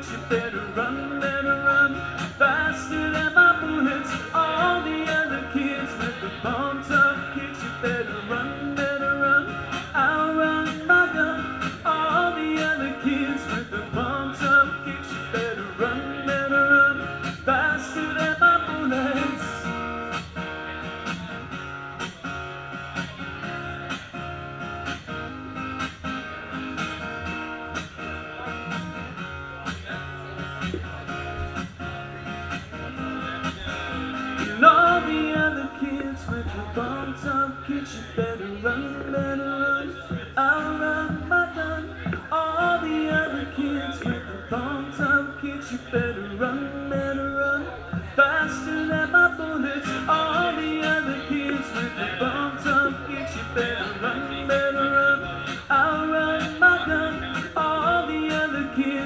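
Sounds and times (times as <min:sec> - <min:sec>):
guitar playing: 0:00.0 - 0:59.0.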